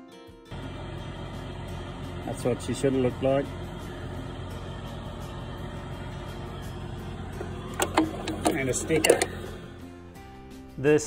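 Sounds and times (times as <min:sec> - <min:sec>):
constant low hum: 0:00.5 - 0:10.0
machine engine idling: 0:00.5 - 0:10.0.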